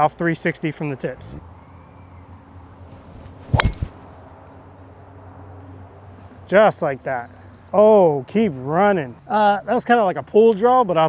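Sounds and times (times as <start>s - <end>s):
golf driver striking ball: 3.5s - 4.0s.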